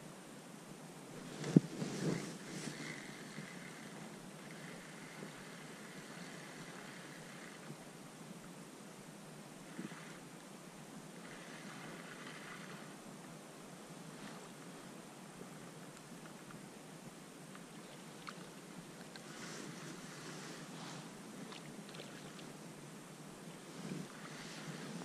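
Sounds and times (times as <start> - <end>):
outdoor background hiss: 0.0 - 25.0
fishing rod knocks and rustles: 1.2 - 2.8.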